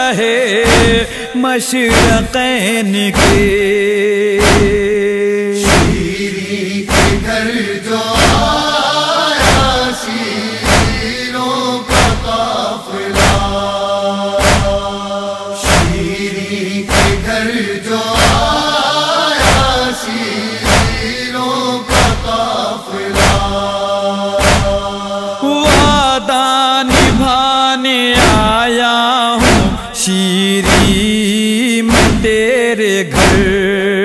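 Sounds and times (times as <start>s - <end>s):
chorus chanting a lament: 0.0s - 34.0s
rhythmic chest-beating thumps: 0.6s - 1.3s, 1.9s - 2.5s, 3.2s - 3.8s, 4.4s - 26.3s, 26.9s - 27.5s, 28.2s - 28.7s, 29.4s - 30.0s, 30.6s - 31.2s, 31.9s - 32.5s, 33.2s - 33.7s.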